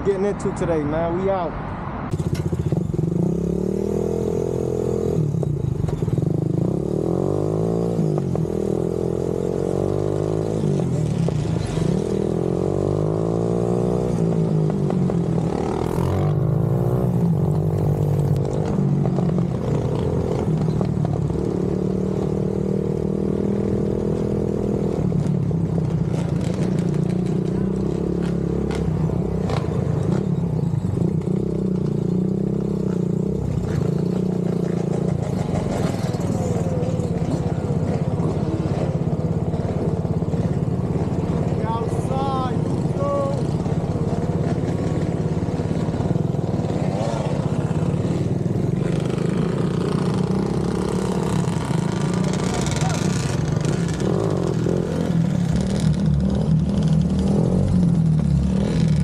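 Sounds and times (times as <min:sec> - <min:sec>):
atv engine revving: 0:02.1 - 0:59.0.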